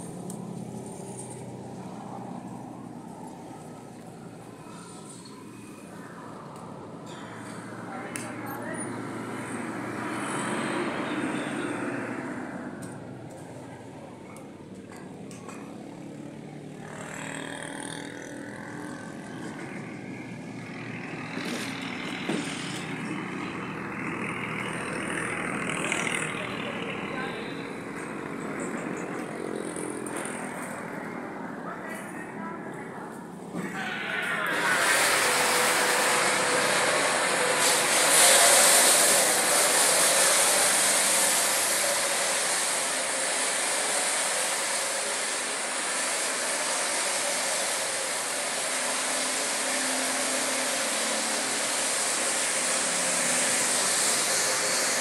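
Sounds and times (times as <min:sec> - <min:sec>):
small motorcycle engine idling: 0:16.2 - 0:30.8
loud steady hiss: 0:33.7 - 0:55.0.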